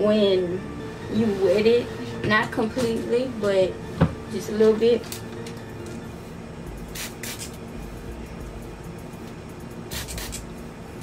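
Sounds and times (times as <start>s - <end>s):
spray bottle spritzing: 6.9s - 7.6s, 9.9s - 10.4s.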